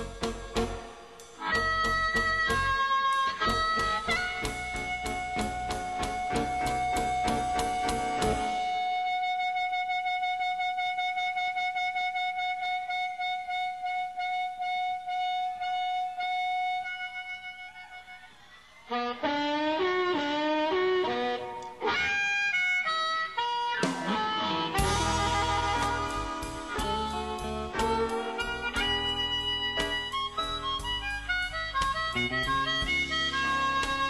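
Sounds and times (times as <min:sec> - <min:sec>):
blues band playing: 0:00.0 - 0:18.2, 0:18.8 - 0:34.0
blues harmonica bending notes: 0:00.0 - 0:34.0.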